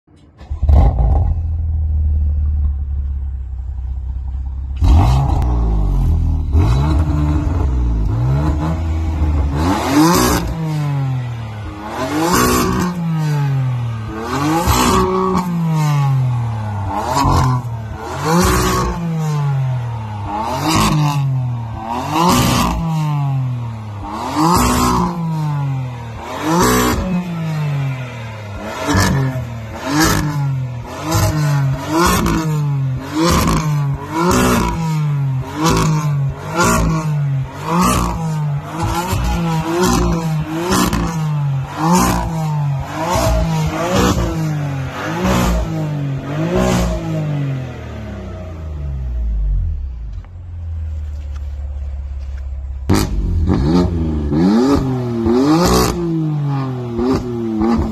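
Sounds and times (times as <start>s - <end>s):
car engine revving: 0.4s - 57.9s.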